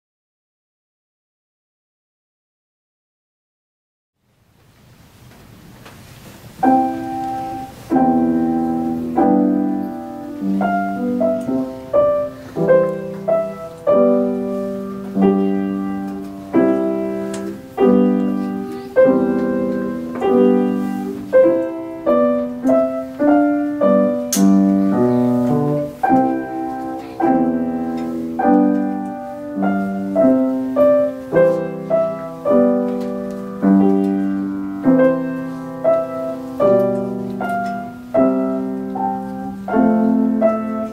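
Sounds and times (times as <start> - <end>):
grand piano classical piece: 6.3 - 40.9.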